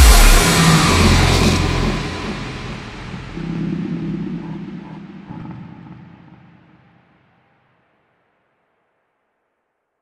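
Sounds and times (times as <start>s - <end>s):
low sustained synth note: 0.0s - 7.2s
deep bass note decaying: 0.0s - 7.4s.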